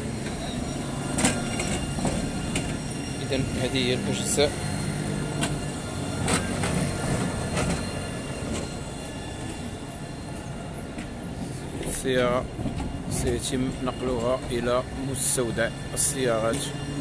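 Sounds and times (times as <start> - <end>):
street noise: 0.0 - 17.0
vehicle mechanical hum: 0.0 - 17.0.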